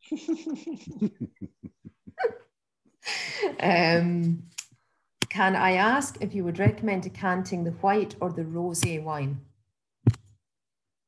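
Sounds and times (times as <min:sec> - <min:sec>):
woman laughing: 0:00.0 - 0:02.5.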